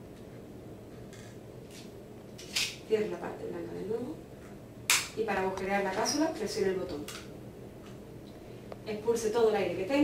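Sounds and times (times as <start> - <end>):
low room noise: 0.0 - 10.0.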